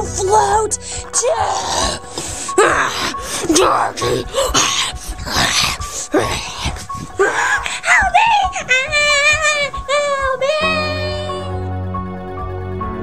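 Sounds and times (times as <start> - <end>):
background music: 0.0 - 13.0
person screaming: 1.3 - 11.5.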